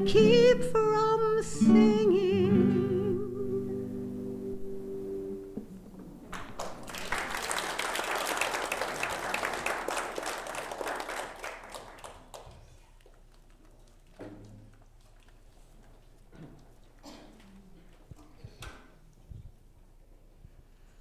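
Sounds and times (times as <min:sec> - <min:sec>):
classical guitar chord ringing: 0:00.0 - 0:05.7
congregation applauding: 0:06.3 - 0:15.4.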